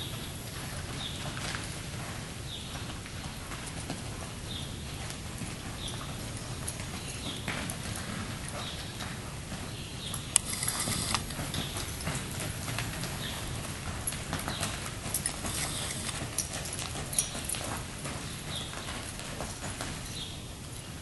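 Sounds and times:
horse hoofbeats on dirt: 0:00.0 - 0:21.0.

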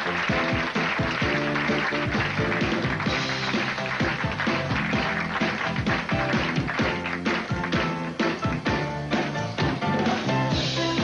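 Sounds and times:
keyboards: 0:00.0 - 0:11.0
steady drum beat: 0:00.0 - 0:11.0.

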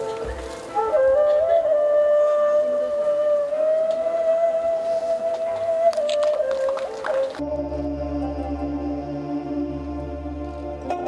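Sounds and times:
flute holding long note: 0:00.0 - 0:11.0.

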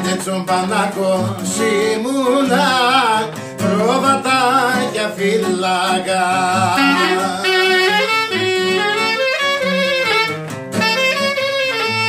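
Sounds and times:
strummed acoustic guitar chords: 0:00.0 - 0:12.0
clarinet melody: 0:02.4 - 0:12.0.

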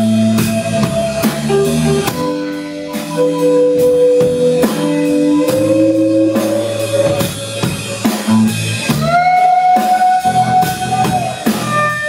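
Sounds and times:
drum kit steady beat: 0:00.0 - 0:12.0
electric guitars holding notes: 0:00.0 - 0:12.0.

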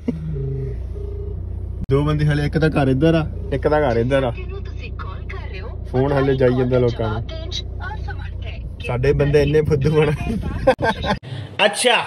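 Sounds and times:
car cabin hum: 0:00.0 - 0:11.2.

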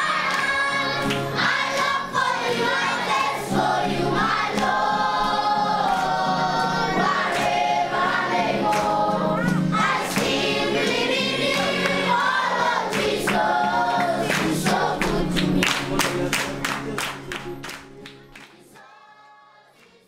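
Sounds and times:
choir singing: 0:00.0 - 0:17.0, 0:18.5 - 0:20.0.

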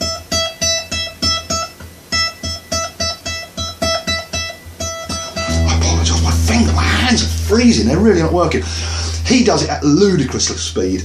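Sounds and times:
acoustic guitar note plucked: 0:05.3 - 0:11.0
steady low hum: 0:05.4 - 0:11.0.

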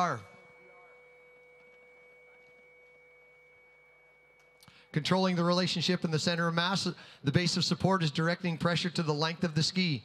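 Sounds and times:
faint high tone: 0:00.0 - 0:05.7
faint mid-pitched tone: 0:00.0 - 0:06.5.

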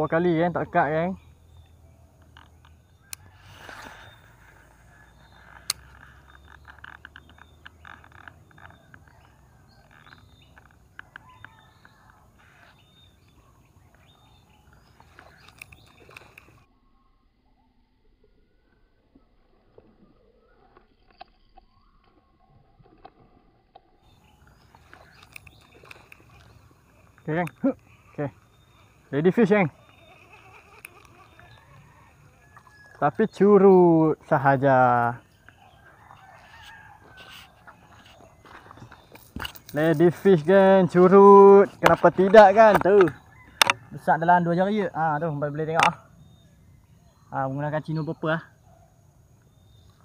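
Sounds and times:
light clicks and ticks: 0:14.6 - 0:16.6, 0:23.0 - 0:29.0.

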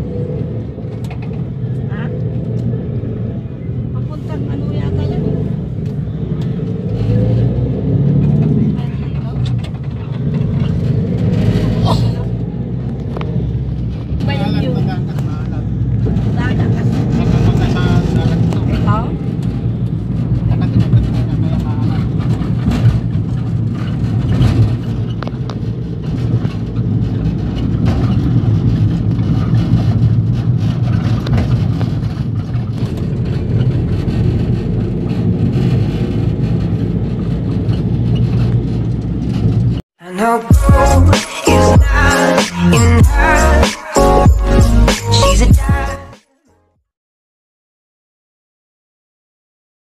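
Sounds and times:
vehicle engine and road noise: 0:00.0 - 0:46.5.

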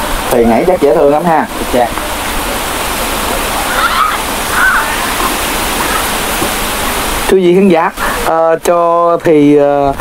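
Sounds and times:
loud rushing hiss: 0:00.0 - 0:08.6.

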